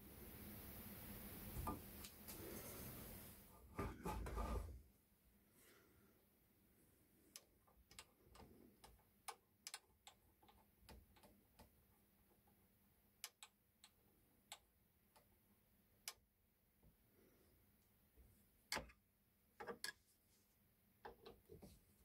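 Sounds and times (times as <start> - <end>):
small metal clicks: 7.3 - 11.8.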